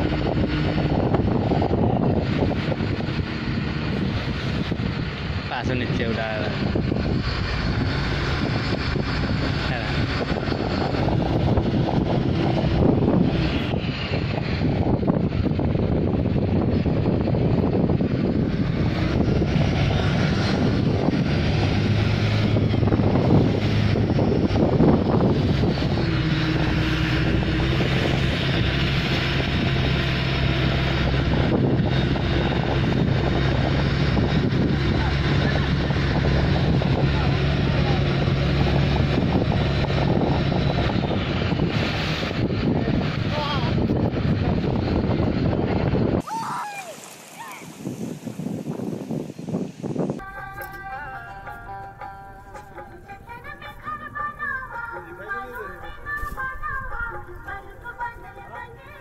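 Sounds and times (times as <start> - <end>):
motorboat engine running: 0.0 - 46.2, 47.8 - 59.0
wind over water: 0.0 - 59.0.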